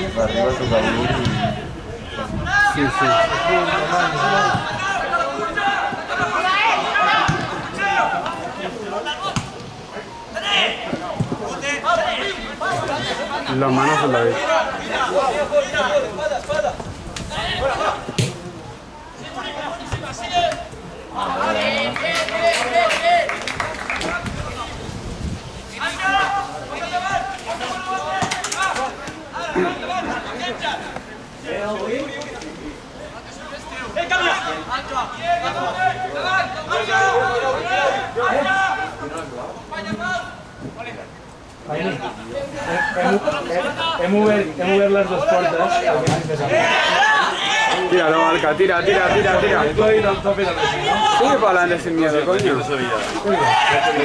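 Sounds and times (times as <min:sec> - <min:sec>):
people talking: 0:00.0 - 0:24.9, 0:25.8 - 0:54.0
voices calling out: 0:00.0 - 0:25.0, 0:25.6 - 0:54.0.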